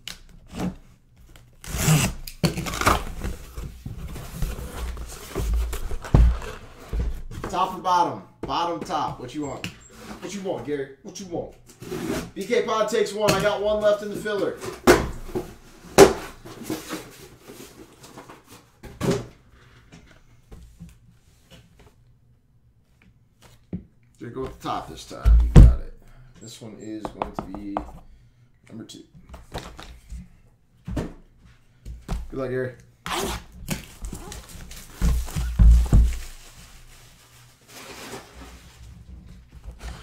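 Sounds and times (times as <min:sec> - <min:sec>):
plastic rustling: 0:33.7 - 0:40.0.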